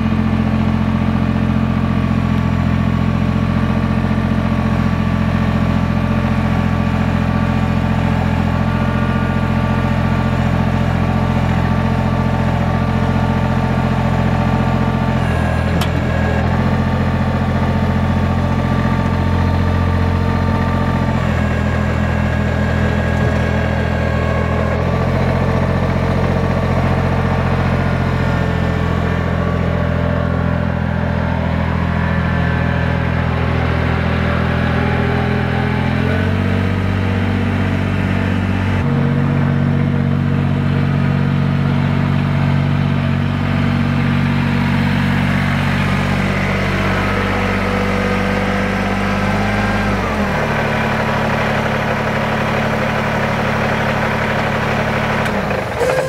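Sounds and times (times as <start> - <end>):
tractor diesel engine idling: 0.0 - 56.0.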